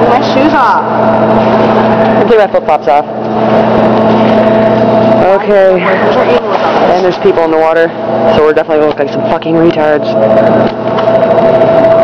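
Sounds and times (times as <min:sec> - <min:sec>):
loud machine hum: 0:00.0 - 0:12.0.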